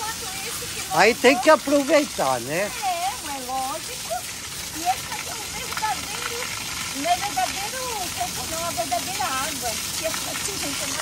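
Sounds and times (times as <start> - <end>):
shower water splashing on rock: 0.0 - 11.0.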